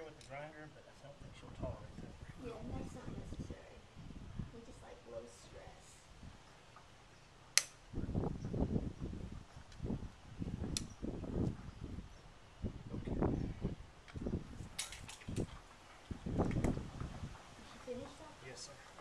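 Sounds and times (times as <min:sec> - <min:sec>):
hoof nippers snapping: 0:07.5 - 0:07.8, 0:10.7 - 0:11.0, 0:14.0 - 0:15.7.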